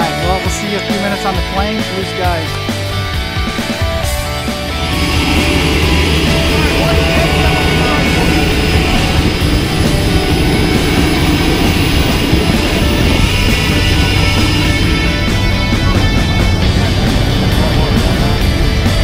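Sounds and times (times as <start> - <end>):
airplane engine running: 0.0 - 19.0
background music: 0.0 - 19.0.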